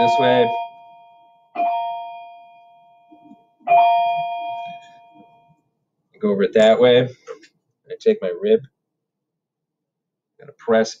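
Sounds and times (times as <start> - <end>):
bell-like chime: 0.0 - 5.6.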